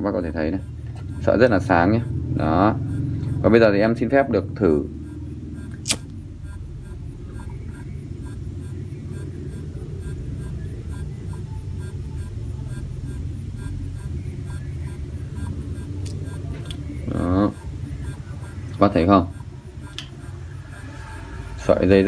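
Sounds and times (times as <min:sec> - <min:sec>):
low background rumble: 0:00.0 - 0:22.0
lighter clicking: 0:05.7 - 0:06.2
man speaking: 0:21.6 - 0:22.0.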